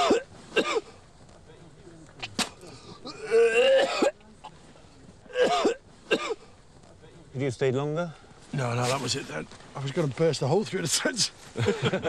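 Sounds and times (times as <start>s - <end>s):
man coughing: 5.3s - 6.4s.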